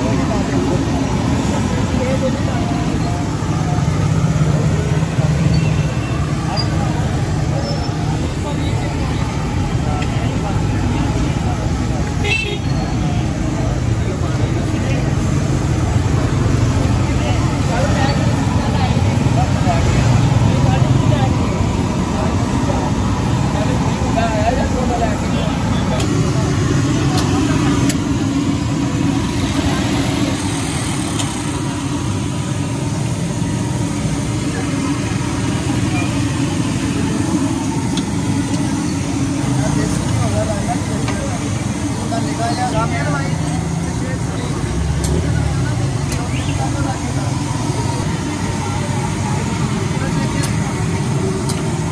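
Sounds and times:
low rumble of traffic: 0.0 - 51.9
people talking: 0.0 - 51.9.

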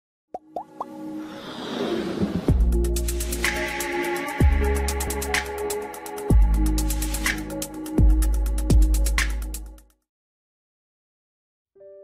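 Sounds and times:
whoosh: 1.2 - 2.9.

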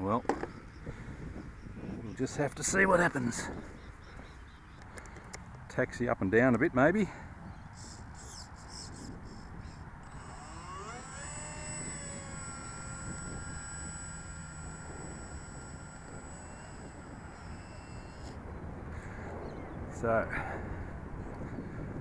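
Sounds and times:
electric motor whine: 7.8 - 20.0.

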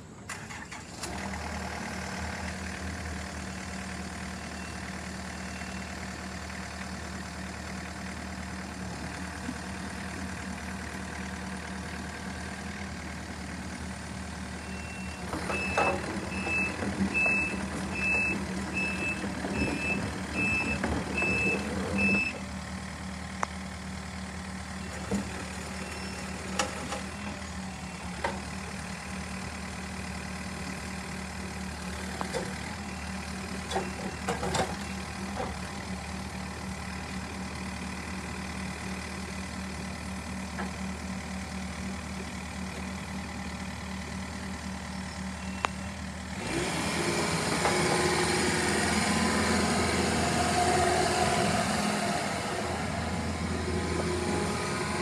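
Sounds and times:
excavator diesel engine running: 0.0 - 55.0
travel alarm beeping: 14.6 - 22.4.

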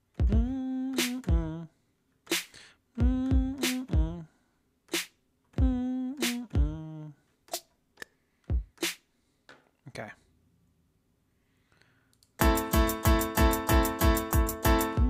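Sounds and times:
drum machine kick and snare: 0.0 - 1.6, 2.3 - 4.2, 4.9 - 6.8, 8.5 - 9.0, 12.4 - 15.0.

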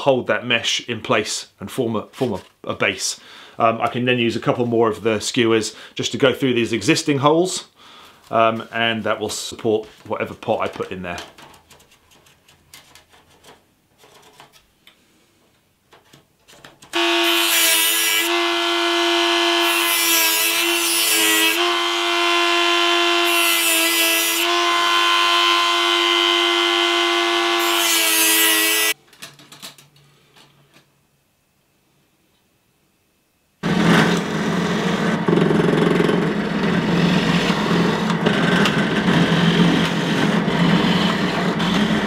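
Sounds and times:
disc grinding through metal mesh: 33.6 - 42.0
rotary tool whining: 33.6 - 42.0.

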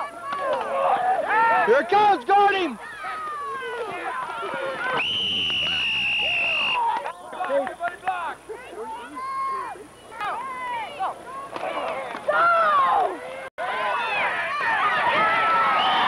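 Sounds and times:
spectators and coaches shouting: 0.0 - 16.0
referee's whistle blast: 5.0 - 6.9
loud yell: 12.3 - 16.0.

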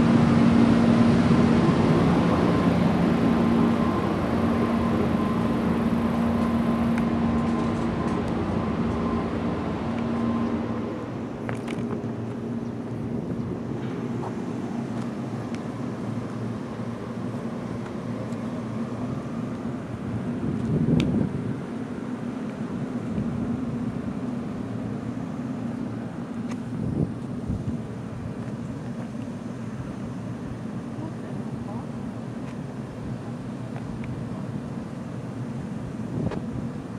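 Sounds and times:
electric train humming: 0.0 - 36.9.

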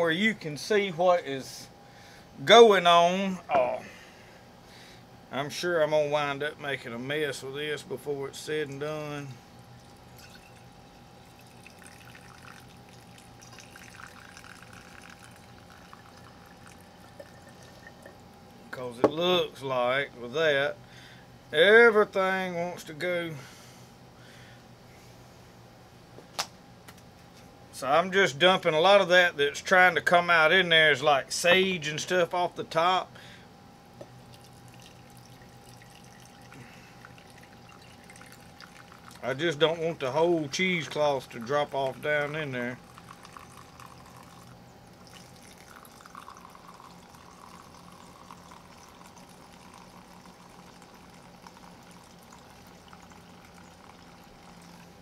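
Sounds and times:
liquid trickling through funnel: 9.5 - 18.6, 34.2 - 55.0
small drips: 9.7 - 18.3, 34.2 - 39.4, 40.9 - 55.0.

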